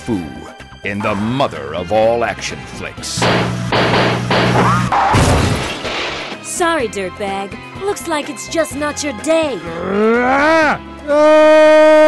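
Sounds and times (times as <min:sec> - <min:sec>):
person screaming: 0:09.8 - 0:12.0.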